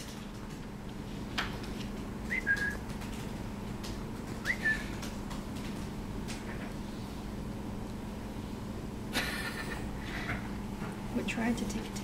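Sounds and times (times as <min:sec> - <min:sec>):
low room hum: 0:00.0 - 0:12.0
person whistling: 0:02.3 - 0:02.8, 0:04.4 - 0:04.9.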